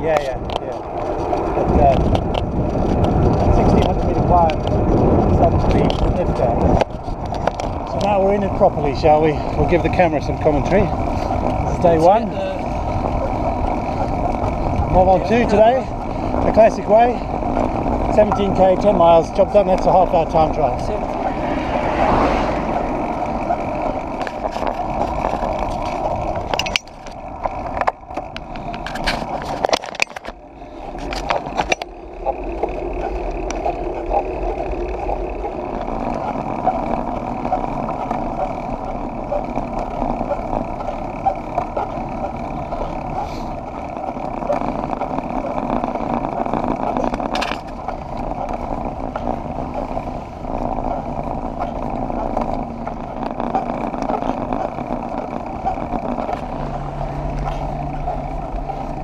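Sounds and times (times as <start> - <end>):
wind rushing over microphone: 0.0 - 40.8
tyres rumbling on tarmac: 0.0 - 59.0.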